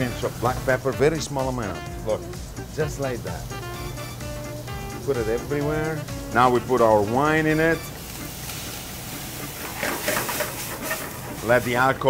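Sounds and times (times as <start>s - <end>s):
wine sizzling in a hot pan: 0.0s - 12.0s.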